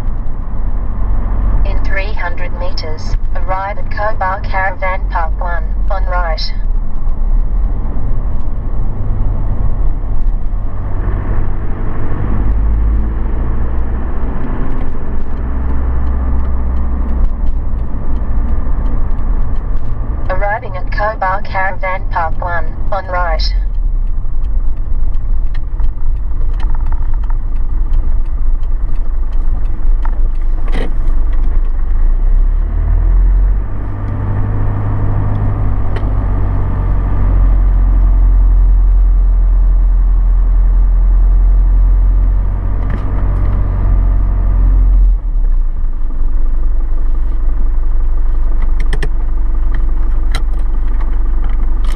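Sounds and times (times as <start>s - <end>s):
car engine and road rumble: 0.0s - 51.9s.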